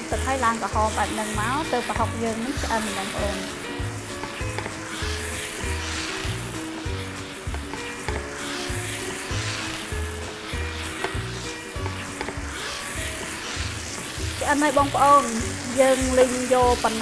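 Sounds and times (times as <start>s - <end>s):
meat sizzling in a frying pan: 0.0s - 17.0s
wooden spatula stirring: 0.8s - 17.0s
music with low beat: 3.8s - 4.8s, 7.5s - 8.4s.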